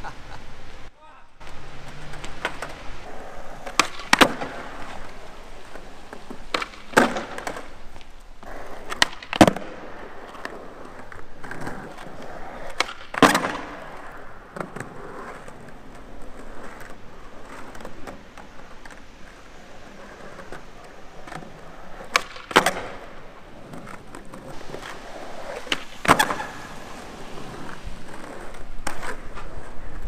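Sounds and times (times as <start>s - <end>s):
skateboard wheels rolling on concrete: 0.0s - 30.0s
skateboard wooden clacks: 1.4s - 30.0s.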